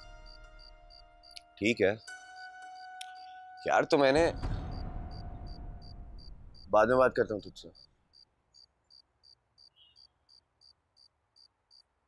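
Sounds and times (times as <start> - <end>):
cricket chirping: 0.0 - 3.6, 4.4 - 11.9.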